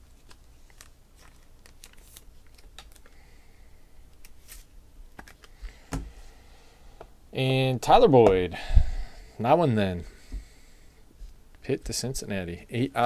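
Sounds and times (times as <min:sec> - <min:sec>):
trading cards being handled: 0:00.0 - 0:03.2, 0:04.2 - 0:05.7.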